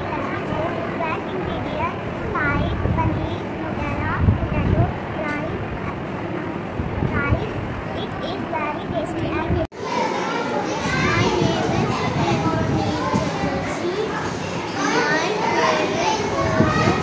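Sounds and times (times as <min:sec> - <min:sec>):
children talking: 0:00.0 - 0:17.0.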